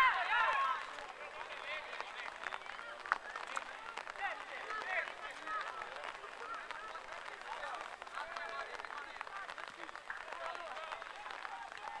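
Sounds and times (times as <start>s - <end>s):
players shouting and calling: 0.0s - 12.0s.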